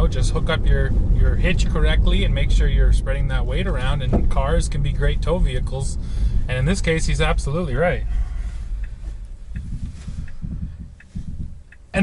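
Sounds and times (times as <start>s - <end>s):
road and tyre rumble in car: 0.0s - 12.0s
faint light ticks: 8.7s - 12.0s.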